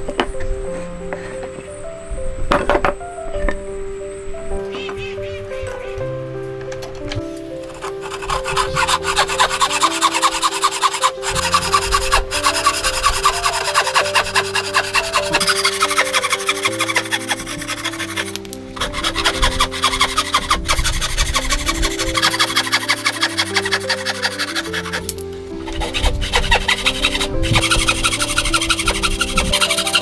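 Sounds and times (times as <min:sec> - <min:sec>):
background music sustained notes: 0:00.0 - 0:30.0
hand saw cutting wood: 0:07.6 - 0:30.0.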